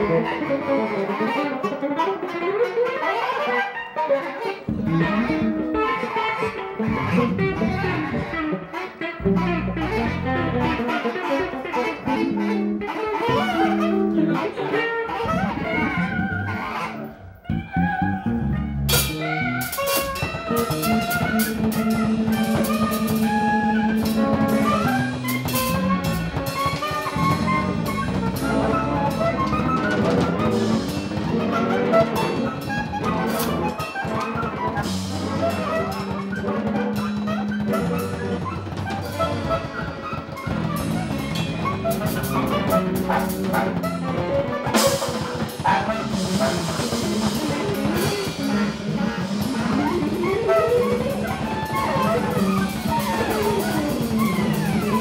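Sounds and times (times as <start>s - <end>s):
bass: 0.0s - 1.2s, 4.6s - 55.0s
bass clarinet: 0.0s - 55.0s
electric guitar: 0.0s - 55.0s
drum kit: 4.6s - 14.4s, 15.2s - 55.0s.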